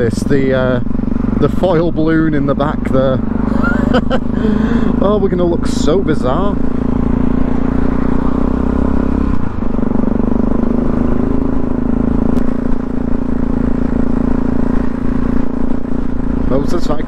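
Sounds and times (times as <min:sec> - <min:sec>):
motorcycle engine running: 0:00.0 - 0:17.0
road noise: 0:00.0 - 0:17.0.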